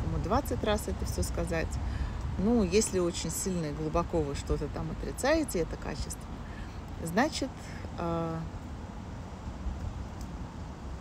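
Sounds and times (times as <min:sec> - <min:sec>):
distant traffic: 0:00.0 - 0:11.0
low street rumble: 0:00.0 - 0:11.0.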